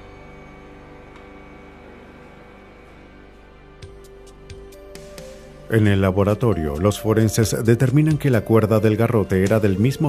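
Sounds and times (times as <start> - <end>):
background music drone: 0.0 - 10.0.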